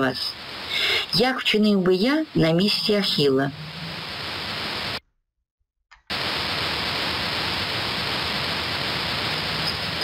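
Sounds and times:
steady hiss of voice recording: 0.0s - 5.0s, 6.1s - 10.0s.

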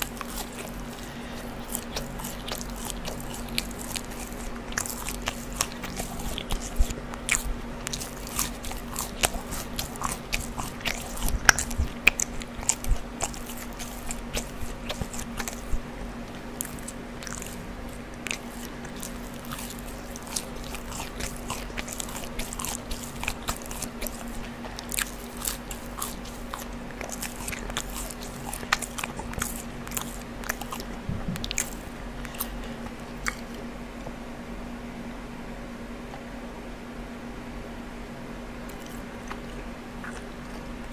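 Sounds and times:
wet mouth clicks: 0.0s - 33.6s, 38.7s - 40.7s
chewing crunchy fries: 0.0s - 33.8s, 38.6s - 40.9s.

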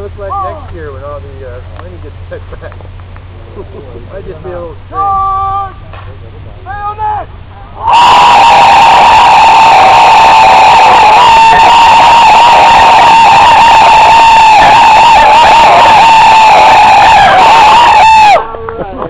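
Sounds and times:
group yelling high-pitched: 7.8s - 18.4s.

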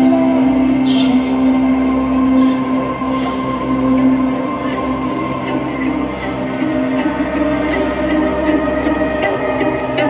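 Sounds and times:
brass and winds holding a chord: 0.0s - 10.0s.

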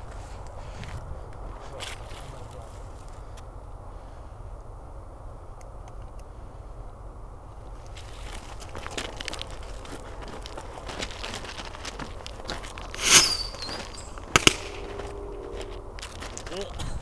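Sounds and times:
firework sputtering and crackling: 10.4s - 15.1s
sharp pops: 12.9s - 15.1s
firework hissing burst with whistle: 12.9s - 15.2s.

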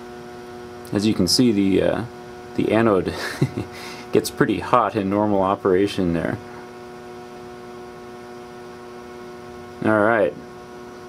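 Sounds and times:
electrical mains hum: 0.0s - 11.0s
man speaking: 0.9s - 3.2s, 4.2s - 6.4s, 9.8s - 10.4s.

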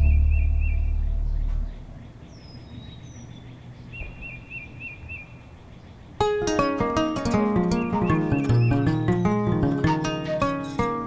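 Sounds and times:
low rumble: 0.0s - 2.4s
birds chirping: 0.0s - 11.0s.

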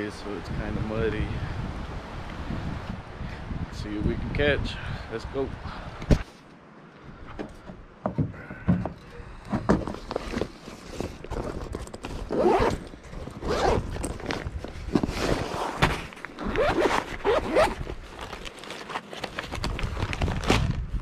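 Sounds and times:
rustling and small bumps: 7.2s - 21.0s
backpack zippers opening: 11.1s - 20.7s.

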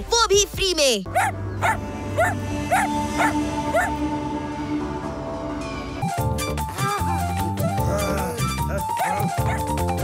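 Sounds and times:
cartoon background music: 0.0s - 10.0s
puppy barking: 1.1s - 3.9s, 9.0s - 9.7s.

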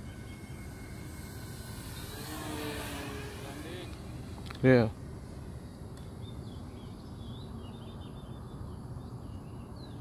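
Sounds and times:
model plane motor and propeller: 0.0s - 10.0s.

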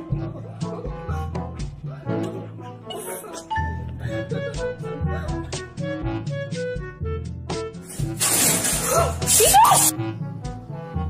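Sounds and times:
light background music: 0.0s - 11.0s
shattering crash: 7.9s - 9.4s.

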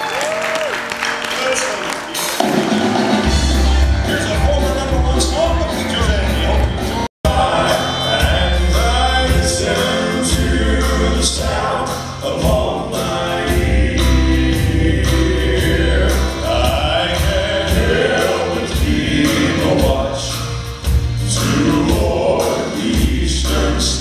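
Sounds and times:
band with bass and drums: 0.8s - 24.0s
male gospel quartet singing: 3.2s - 24.0s.

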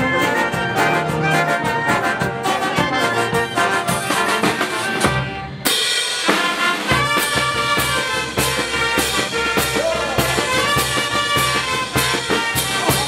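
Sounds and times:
brass band playing: 0.0s - 13.0s.

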